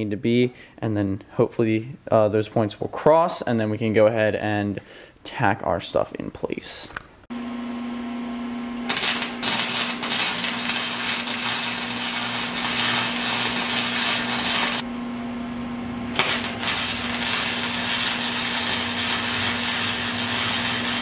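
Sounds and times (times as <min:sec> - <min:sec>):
electric arc welding crackle: 0:08.9 - 0:14.9, 0:16.1 - 0:21.0.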